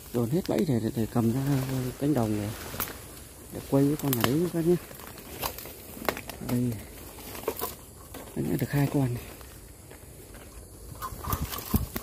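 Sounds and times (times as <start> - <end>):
twig snapping: 0.0 - 0.9, 2.5 - 8.3
leaves and twigs rustling: 0.0 - 12.0.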